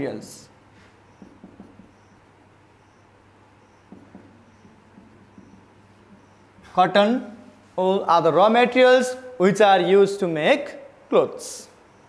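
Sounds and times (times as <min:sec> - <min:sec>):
low steady hum: 0:00.0 - 0:09.4
marker pen squeaking on whiteboard: 0:00.8 - 0:06.8.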